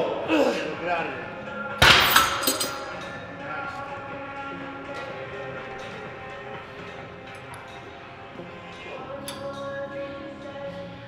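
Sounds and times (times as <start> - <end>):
gym background with music: 0.0 - 11.0.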